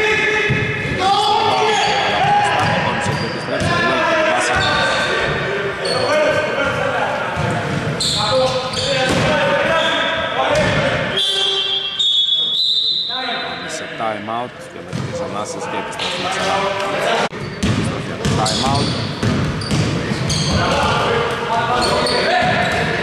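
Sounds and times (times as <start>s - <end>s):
voices calling out in echoing hall: 0.0s - 23.0s.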